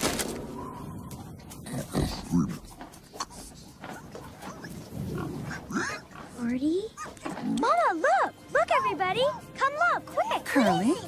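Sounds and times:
pigs grunting: 0.5s - 7.9s
pig calls: 1.6s - 7.9s.

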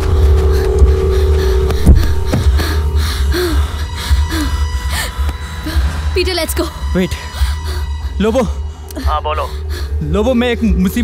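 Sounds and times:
person panting and gasping: 0.0s - 6.2s
low musical drone: 0.0s - 11.0s.

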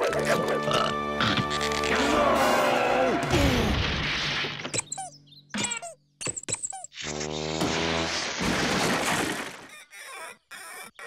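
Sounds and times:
cartoon background music: 0.0s - 3.7s.

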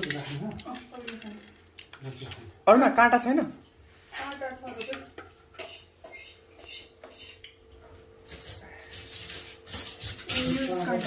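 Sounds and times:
metal utensils clinking on dishes: 8.3s - 11.0s.

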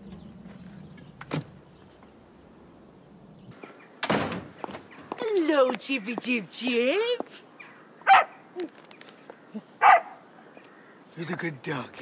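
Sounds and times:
dog barking: 8.1s - 8.4s, 9.8s - 10.2s.

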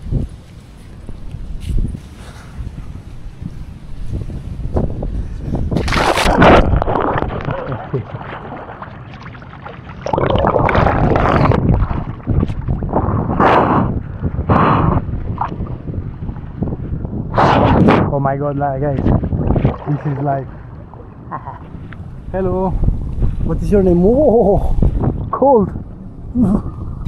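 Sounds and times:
pool water splashing: 5.8s - 12.9s, 19.3s - 21.9s.

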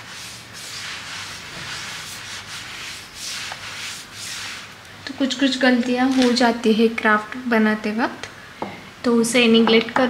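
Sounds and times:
cloth wiping tabletop: 0.0s - 4.8s.

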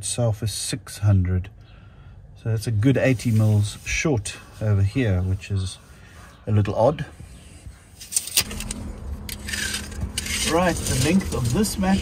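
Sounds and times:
metal tape rattling and scraping: 8.0s - 12.0s.

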